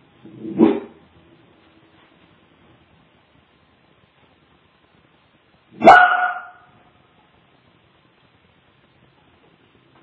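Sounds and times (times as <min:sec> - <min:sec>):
small dog barking: 0:05.8 - 0:06.8.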